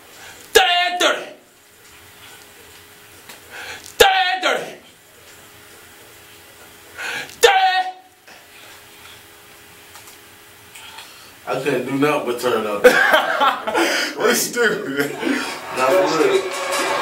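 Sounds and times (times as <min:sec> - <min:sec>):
man shouting vocal ad-libs: 0:00.5 - 0:01.5, 0:04.0 - 0:04.9, 0:07.4 - 0:08.2.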